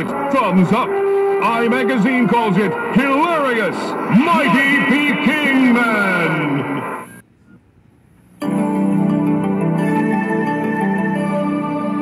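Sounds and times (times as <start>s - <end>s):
male narrator voice with echo: 0.0s - 6.9s.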